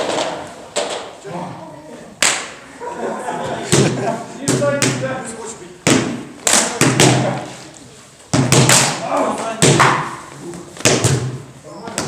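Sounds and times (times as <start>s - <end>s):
sparring sticks striking: 5.8s - 7.6s, 8.3s - 12.0s.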